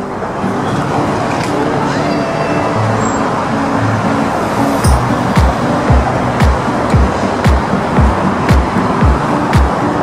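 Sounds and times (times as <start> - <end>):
background music: 0.0 - 10.0
road traffic: 0.0 - 10.0.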